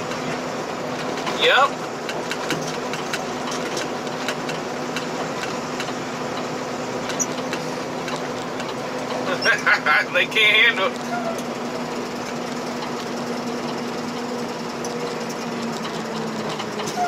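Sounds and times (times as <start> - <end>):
car road and engine noise: 0.0 - 17.0.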